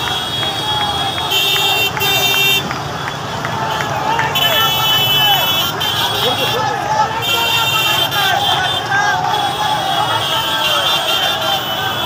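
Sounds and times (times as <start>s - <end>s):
crowd shouting: 0.0s - 12.0s
horns honking: 0.0s - 12.0s.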